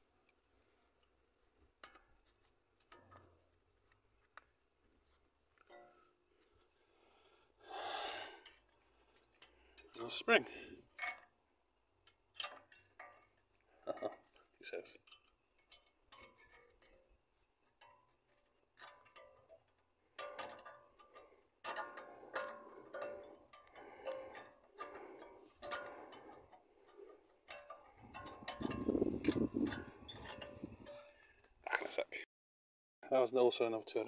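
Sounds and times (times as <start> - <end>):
light metallic clicks and taps: 0.2 - 4.6, 12.0 - 31.9
scraping metal rattle: 17.7 - 31.3.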